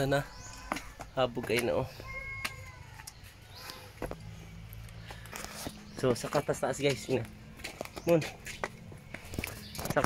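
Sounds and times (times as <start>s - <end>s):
footsteps climbing stairs: 0.0s - 2.7s.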